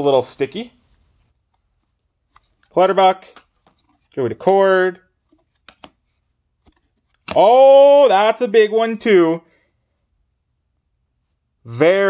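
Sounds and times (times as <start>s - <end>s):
trading cards handled: 0.4s - 7.6s.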